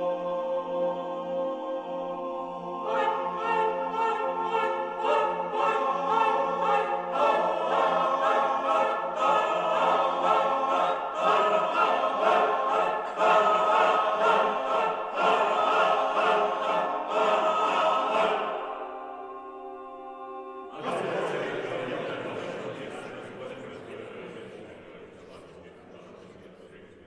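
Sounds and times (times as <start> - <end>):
men's choir singing: 0.0 - 25.7.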